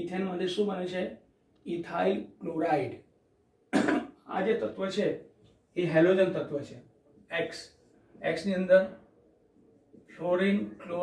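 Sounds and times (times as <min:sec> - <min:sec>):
man coughing: 0:03.7 - 0:04.2.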